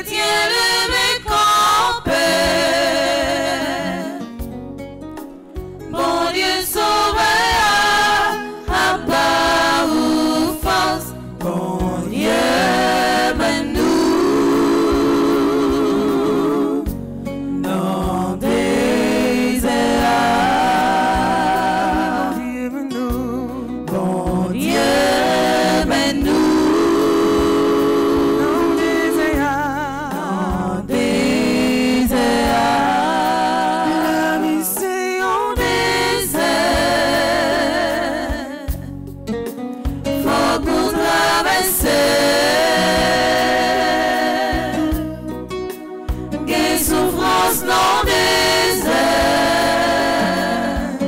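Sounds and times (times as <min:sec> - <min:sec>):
women singing a hymn in harmony: 0:00.0 - 0:04.5, 0:05.8 - 0:39.0, 0:39.8 - 0:51.0.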